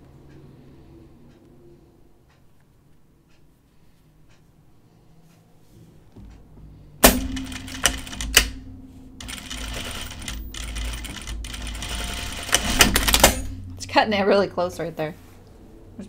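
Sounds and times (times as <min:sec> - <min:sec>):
sewing machine clicks: 0:07.0 - 0:08.6, 0:09.2 - 0:13.5
sewing machine stitching: 0:09.2 - 0:13.5.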